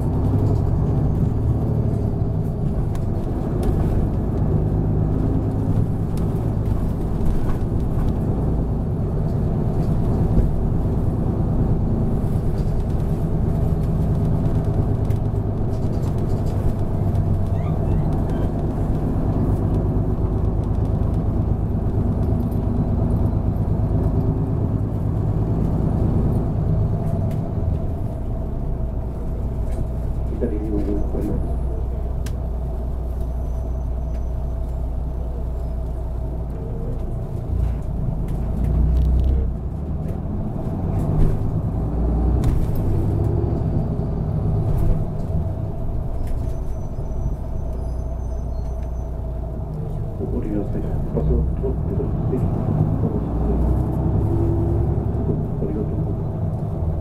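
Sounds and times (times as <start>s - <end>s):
bus engine hum: 0.0s - 57.0s
road rumble: 0.0s - 57.0s.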